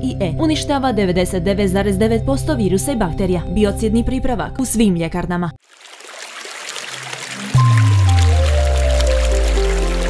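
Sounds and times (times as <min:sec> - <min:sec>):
rushing water-like sound effect: 0:05.6 - 0:10.0
deep sustained music chord: 0:07.6 - 0:10.0.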